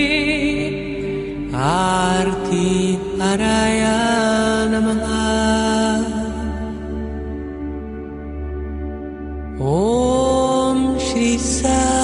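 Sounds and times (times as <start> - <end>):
person chanting: 0.0 - 7.8, 9.5 - 12.0
low drone: 0.0 - 12.0.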